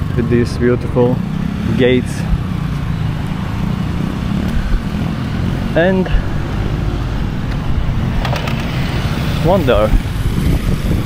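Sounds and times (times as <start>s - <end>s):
motorcycles and cars passing: 0.0s - 11.0s.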